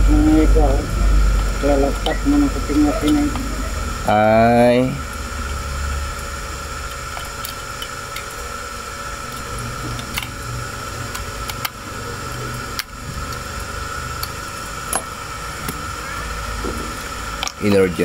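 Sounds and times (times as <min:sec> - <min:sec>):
background hum and hiss: 0:00.0 - 0:18.0.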